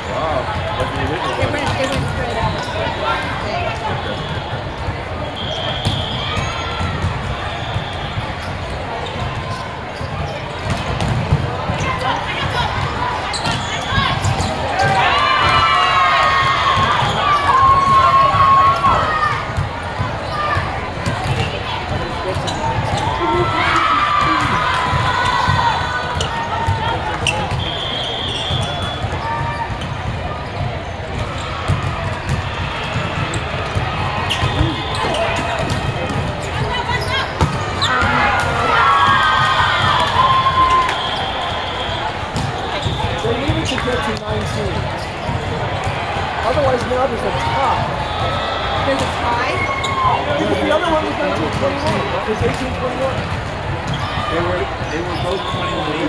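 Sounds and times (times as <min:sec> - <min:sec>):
chatter of voices: 0:00.0 - 0:56.0
players shouting and cheering: 0:00.0 - 0:56.0
volleyballs struck and bouncing: 0:05.8 - 0:15.6, 0:16.2 - 0:27.7, 0:28.5 - 0:41.0, 0:42.1 - 0:49.6, 0:50.4 - 0:55.4.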